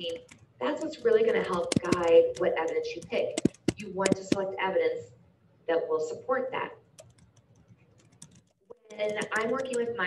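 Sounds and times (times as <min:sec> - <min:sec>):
computer keyboard typing: 0:00.0 - 0:04.5, 0:06.9 - 0:10.0.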